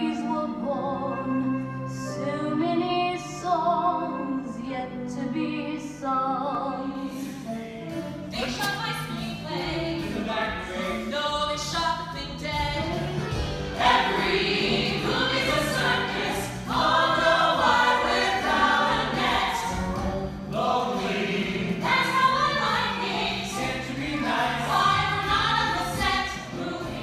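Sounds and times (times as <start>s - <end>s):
instrumental accompaniment: 0.0s - 27.0s
men and women singing together: 7.0s - 12.8s, 13.7s - 27.0s.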